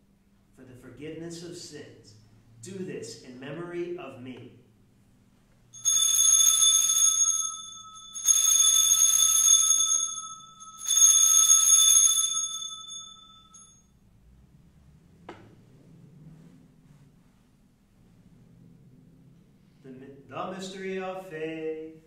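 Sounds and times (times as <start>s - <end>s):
altar bells ringing: 5.8s - 13.9s.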